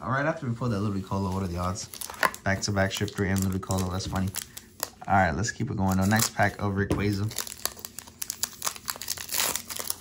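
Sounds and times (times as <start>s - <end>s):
foil wrapper crinkling: 1.1s - 5.0s, 5.8s - 10.0s.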